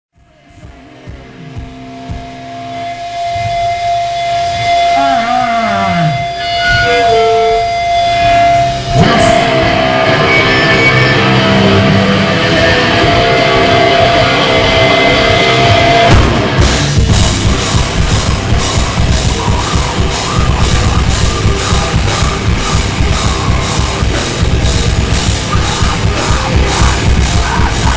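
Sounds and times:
heavy rock music: 0.2s - 27.9s
electric guitar notes: 0.4s - 27.9s.

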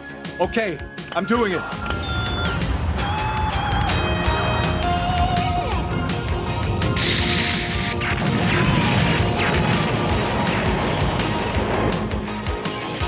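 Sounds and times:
cartoon action music: 1.3s - 13.0s
noisy crash: 6.8s - 12.3s.

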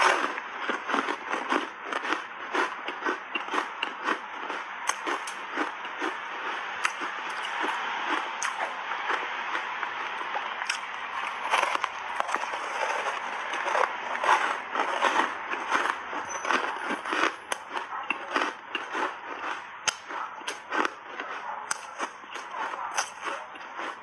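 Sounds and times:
crunching and chewing ice: 0.0s - 24.0s.

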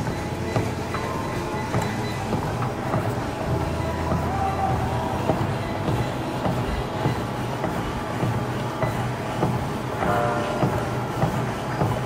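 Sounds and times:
running footfalls on treadmill belt: 0.0s - 12.0s
treadmill running noise: 0.0s - 12.0s.

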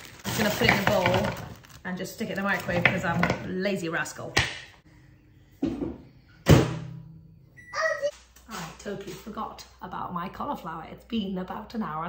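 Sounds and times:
child calling: 7.6s - 8.1s.

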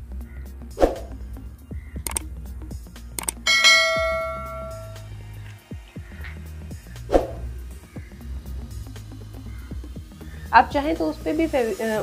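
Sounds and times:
background music: 0.0s - 12.0s
sharp clicks: 2.0s - 2.3s, 3.1s - 3.4s
bell chime: 3.5s - 5.1s.

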